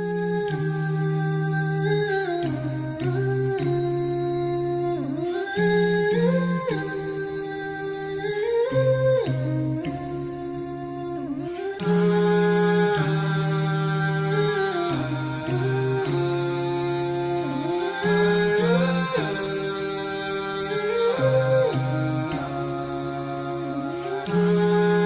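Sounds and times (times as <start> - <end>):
wordless hummed melody: 0.0 - 25.0.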